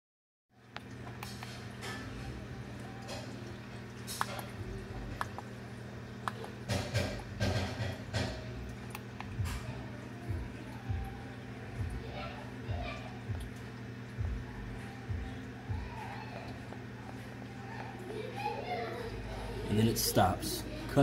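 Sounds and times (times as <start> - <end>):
aquarium equipment electrical hum: 0.5 - 21.0.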